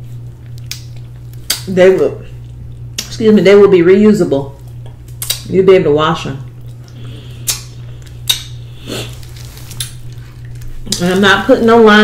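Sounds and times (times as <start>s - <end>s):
steady low hum: 0.0s - 12.0s
soft mouth clicks: 4.8s - 5.4s, 6.7s - 8.6s.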